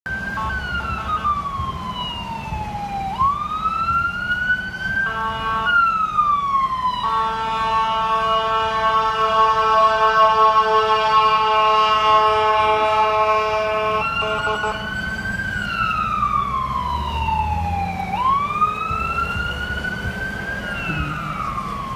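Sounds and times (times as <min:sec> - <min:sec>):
ambulance siren wailing: 0:00.1 - 0:21.9
long steady horn: 0:00.3 - 0:01.4, 0:05.0 - 0:06.0, 0:07.0 - 0:15.0
horn blasts: 0:05.0 - 0:05.9, 0:07.0 - 0:14.9.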